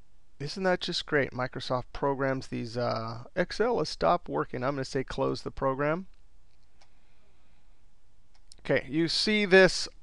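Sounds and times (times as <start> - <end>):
room tone hiss: 0.0 - 10.0
faint click: 6.1 - 7.0.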